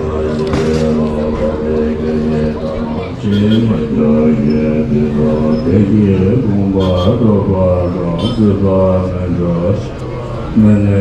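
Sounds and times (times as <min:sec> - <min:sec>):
deep male voices chanting: 0:00.0 - 0:11.0.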